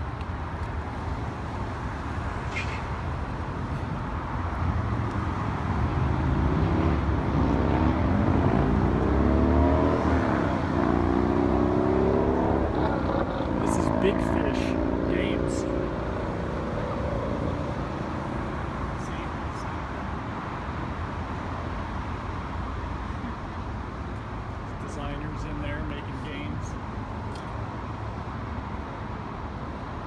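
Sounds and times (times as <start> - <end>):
road traffic: 0.0 - 30.0
vehicle engine accelerating: 4.8 - 18.2.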